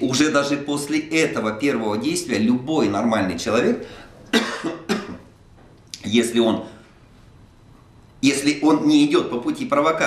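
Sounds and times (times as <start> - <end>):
man coughing: 4.3 - 5.3.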